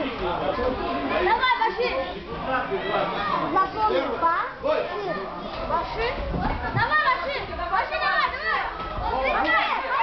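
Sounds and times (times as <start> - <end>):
children shouting and cheering: 6.8 - 10.0.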